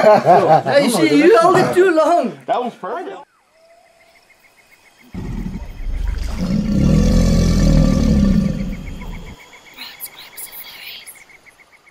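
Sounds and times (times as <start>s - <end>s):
crickets chirping: 0.1s - 11.9s
deep growling rumble: 5.2s - 9.4s.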